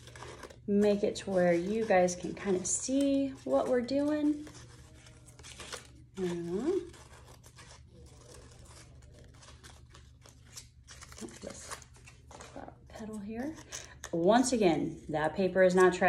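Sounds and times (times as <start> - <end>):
paper rustling: 0.0 - 14.2.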